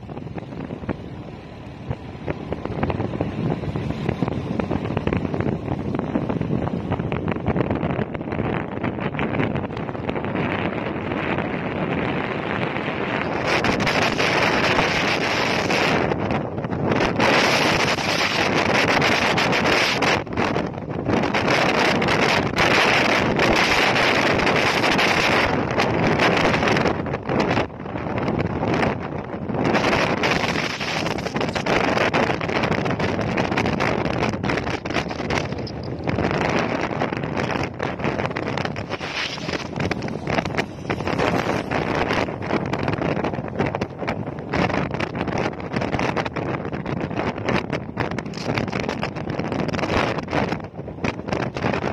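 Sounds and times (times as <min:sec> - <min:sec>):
motorcycle road noise: 0:00.0 - 0:51.9
wind roaring over microphone: 0:00.0 - 0:51.9.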